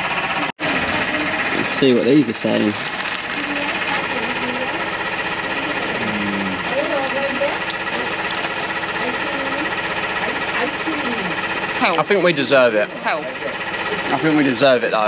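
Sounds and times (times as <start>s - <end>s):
small engine running: 0.0s - 15.0s
faint voices: 0.4s - 8.3s.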